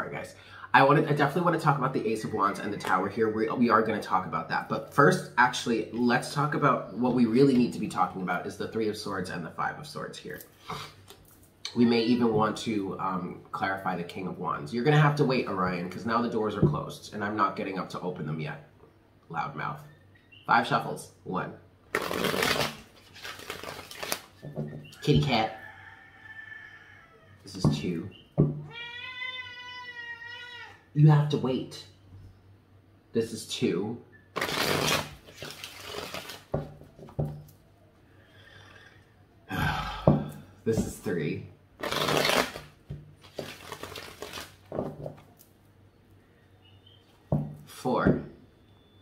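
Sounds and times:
cards being shuffled: 21.9 - 24.4, 34.4 - 36.6, 41.8 - 44.8
cat meowing: 28.7 - 30.8.

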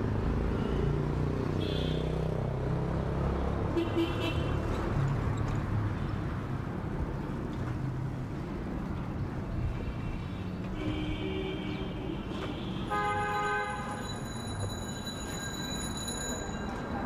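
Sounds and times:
city street noise: 0.0 - 17.0
vehicle horns: 3.8 - 4.6, 10.7 - 14.0.

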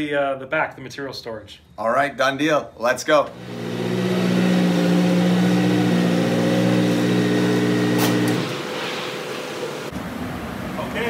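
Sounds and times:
shop machinery humming: 3.3 - 10.9.

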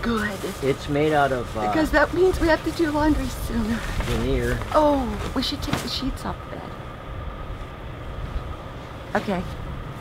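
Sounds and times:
diesel truck idling: 0.0 - 10.0.

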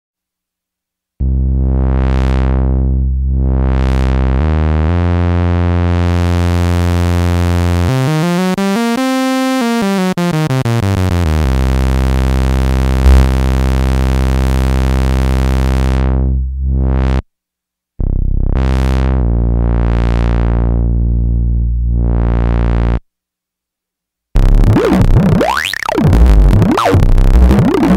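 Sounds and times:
synthesizer bass note: 1.2 - 17.2, 18.0 - 23.0, 24.4 - 27.9.

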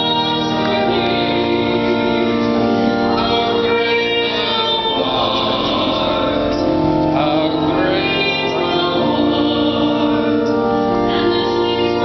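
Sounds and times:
choir singing held notes: 0.0 - 12.0.

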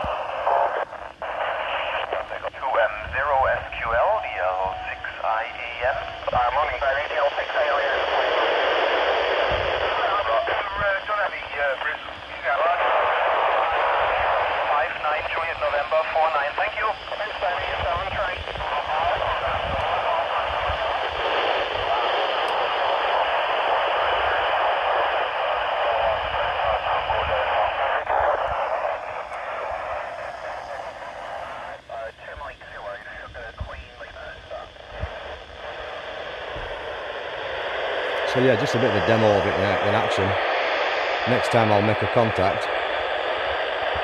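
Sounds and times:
garbled radio voices: 0.0 - 44.0
radio hiss: 0.0 - 44.0.

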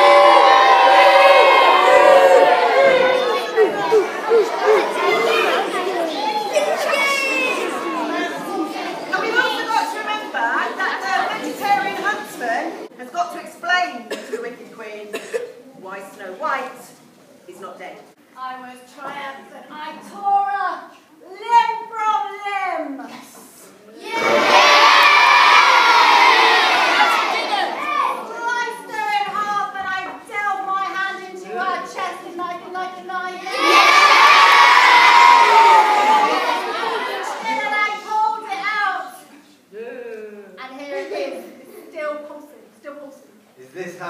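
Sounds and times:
children shouting together: 0.0 - 10.0, 24.0 - 29.0, 33.4 - 38.6
children chattering and calling out: 0.0 - 17.4, 18.1 - 43.5.

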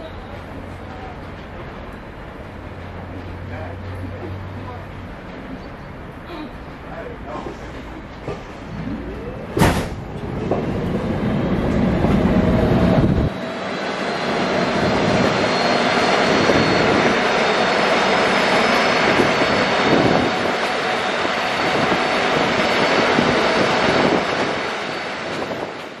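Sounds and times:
train wheels rumbling on rails: 0.0 - 26.0
deep rumble: 8.1 - 15.4.

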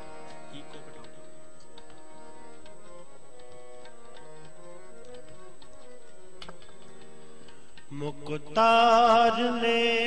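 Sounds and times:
tabla strokes: 0.0 - 8.6
harmonium chords: 0.0 - 10.0.

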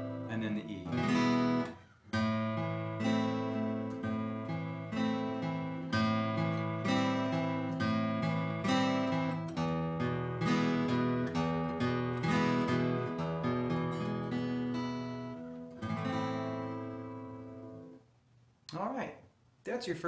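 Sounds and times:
acoustic guitar strumming chords: 0.0 - 18.0.

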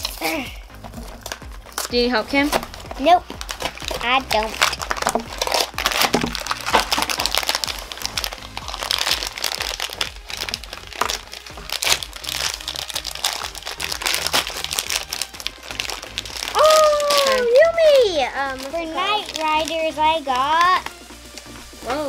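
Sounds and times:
background music: 0.0 - 22.0
foil wrappers crinkling and tearing: 0.0 - 22.0.

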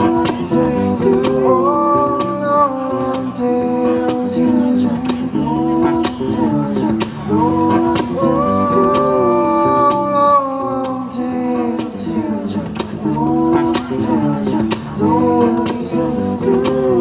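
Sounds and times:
man singing: 0.0 - 17.0.

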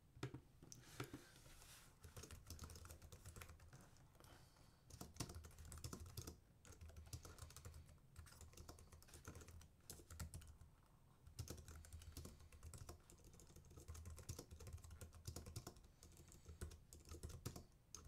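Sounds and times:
typing on computer keyboard: 2.0 - 3.8, 4.9 - 10.6, 11.3 - 18.0.

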